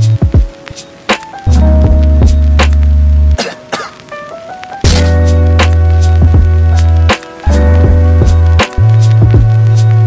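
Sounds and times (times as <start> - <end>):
background music with heavy bass: 0.0 - 10.0
sharp hits: 4.9 - 6.5.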